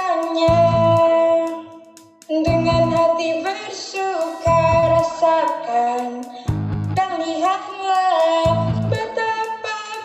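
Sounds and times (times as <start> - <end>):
electric bass note: 6.5 - 7.0.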